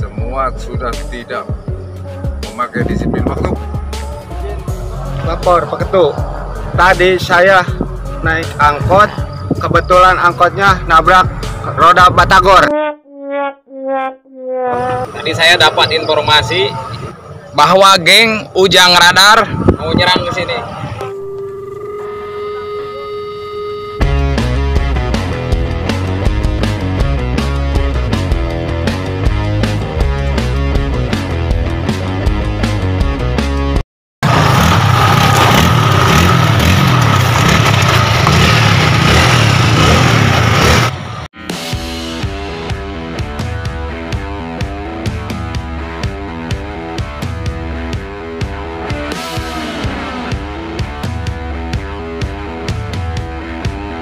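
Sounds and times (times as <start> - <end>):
rock music: 23.9 - 33.8, 40.6 - 54.0
motorcycle engines revving: 34.2 - 41.3, 48.4 - 52.8.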